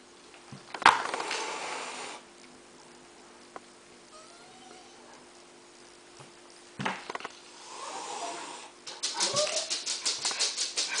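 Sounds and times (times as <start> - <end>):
cat crying: 4.1 - 5.1.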